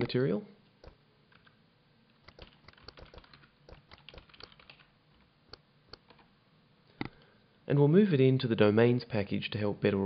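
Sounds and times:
keyboard typing: 0:02.2 - 0:06.3.

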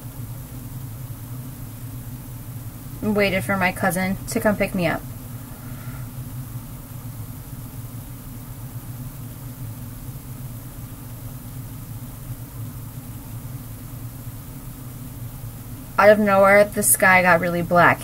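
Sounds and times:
low machine hum: 0:00.0 - 0:18.0.

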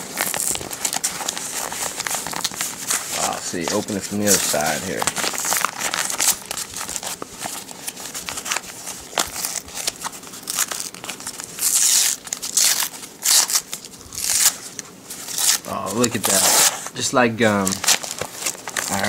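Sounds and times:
paper crinkling and ripping: 0:00.0 - 0:19.0.

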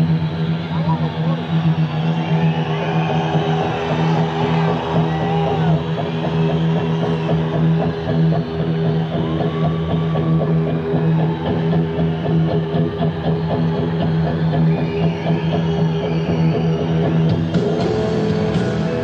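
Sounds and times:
live rock band music: 0:17.0 - 0:19.0.

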